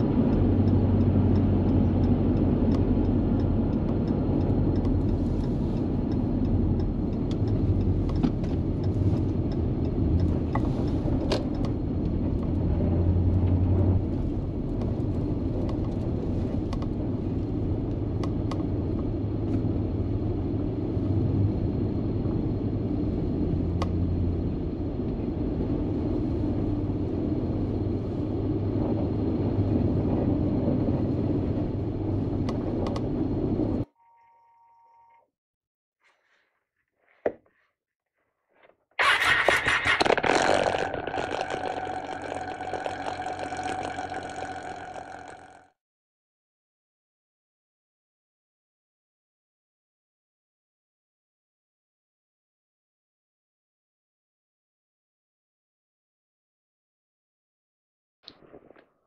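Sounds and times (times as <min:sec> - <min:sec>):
vehicle engine and tyre rumble: 0:00.0 - 0:33.9, 0:38.5 - 0:45.7
light ticks: 0:00.1 - 0:12.6
faint short tone: 0:33.9 - 0:35.3.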